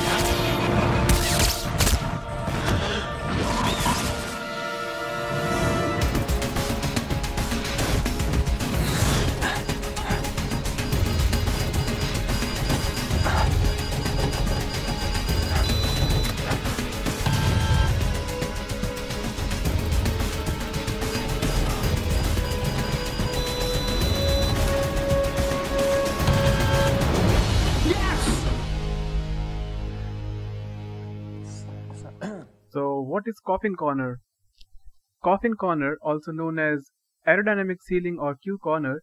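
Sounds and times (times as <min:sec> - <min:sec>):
dramatic film score: 0:00.0 - 0:32.5.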